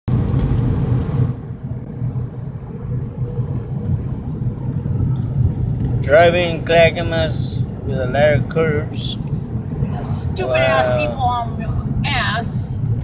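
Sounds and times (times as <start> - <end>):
car tyres and engine rumble: 0.0 - 13.0.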